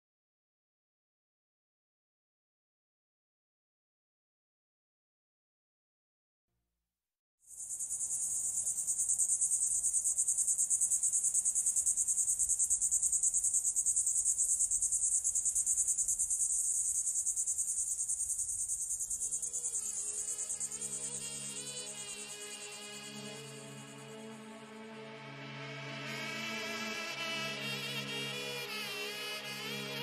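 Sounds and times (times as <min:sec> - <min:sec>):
insect chirring: 0:07.5 - 0:24.4
soft synth music: 0:19.3 - 0:30.0.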